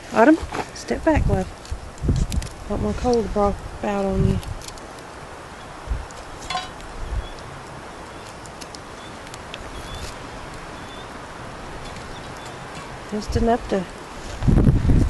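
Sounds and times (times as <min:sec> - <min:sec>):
outdoor background hiss: 0:00.0 - 0:15.0.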